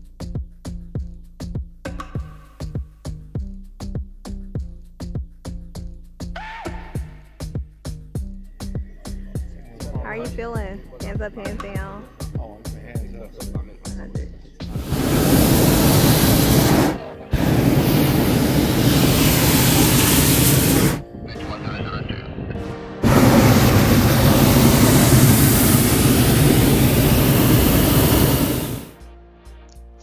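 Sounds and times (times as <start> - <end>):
propane burner roaring: 14.7 - 21.0, 23.0 - 29.0.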